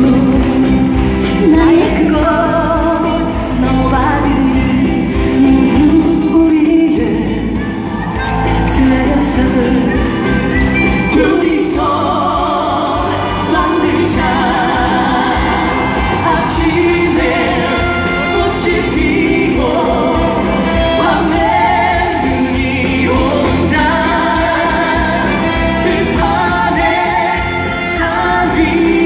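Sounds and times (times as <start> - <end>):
band playing over loudspeakers: 0.0 - 29.0
woman singing with vibrato: 0.0 - 29.0.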